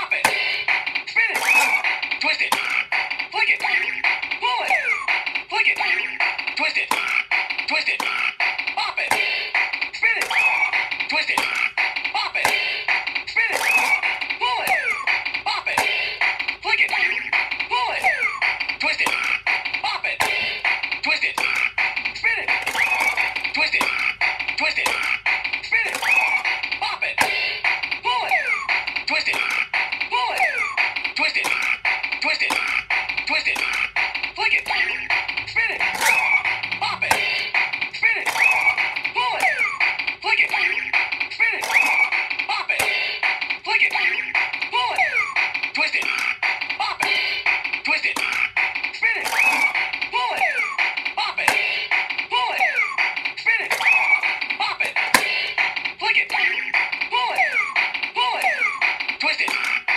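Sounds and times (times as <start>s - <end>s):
electronic voice calling commands: 0.0s - 59.9s
steady click rhythm: 0.0s - 59.9s
toy electronic beat: 0.0s - 59.9s.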